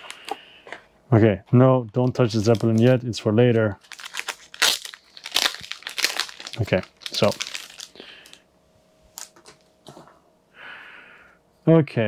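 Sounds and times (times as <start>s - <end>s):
plastic shrink wrap crinkling: 1.8s - 8.4s, 9.1s - 9.7s.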